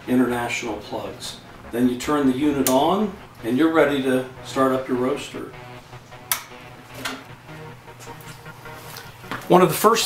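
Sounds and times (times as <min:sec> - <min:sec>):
sharp click: 0:06.3 - 0:07.2.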